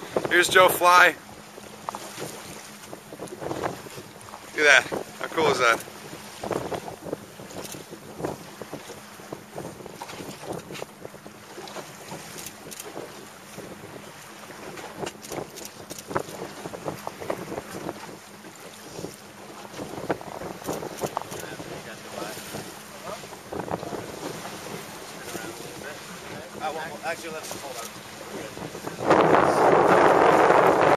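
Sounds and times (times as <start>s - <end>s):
water splashing and slapping: 0.0s - 30.9s
wind buffeting microphone: 0.0s - 30.9s.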